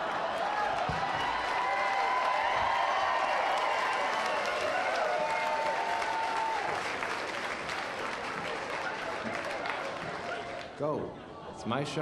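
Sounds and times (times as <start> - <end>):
audience applauding: 0.0 - 10.8.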